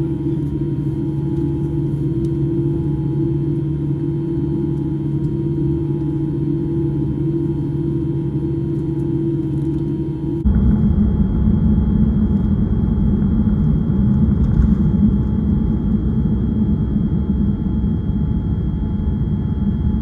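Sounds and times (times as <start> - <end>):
airliner cabin low hum: 0.0 - 20.0
jet engines rumbling at takeoff: 0.0 - 20.0.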